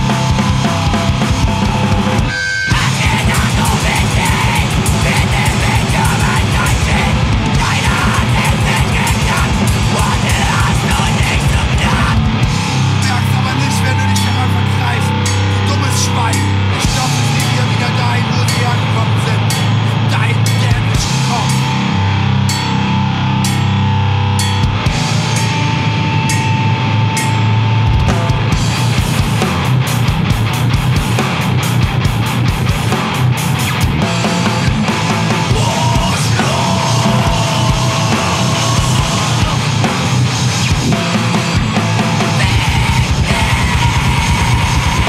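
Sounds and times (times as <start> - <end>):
drum kit with cymbal crashes: 0.0 - 21.9, 24.4 - 45.0
distorted guitar and bass: 0.0 - 45.0.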